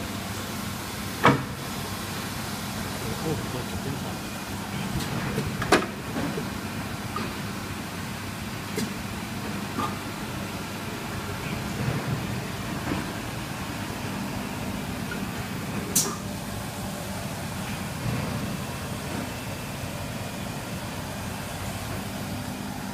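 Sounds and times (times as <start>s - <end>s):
workshop machinery hum: 0.0s - 22.9s.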